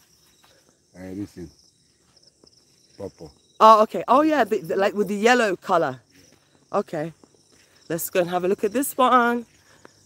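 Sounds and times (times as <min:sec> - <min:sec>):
high-pitched insect chorus: 0:00.0 - 0:10.0.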